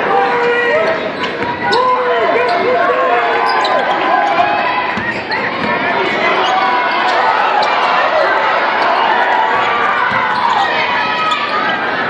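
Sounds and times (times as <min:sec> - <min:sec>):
murmur of gym crowd: 0:00.0 - 0:12.0
sneakers squeaking on hardwood: 0:03.4 - 0:05.8, 0:09.5 - 0:11.7
basketball bouncing: 0:04.3 - 0:05.8, 0:09.5 - 0:10.5.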